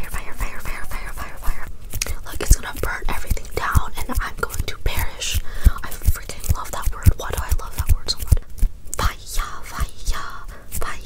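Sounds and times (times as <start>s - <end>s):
soft low thumps near microphone: 0.0s - 11.0s.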